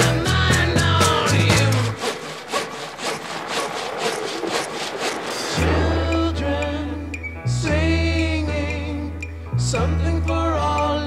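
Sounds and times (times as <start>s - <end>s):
hand saw sawing wood: 0.8s - 6.1s.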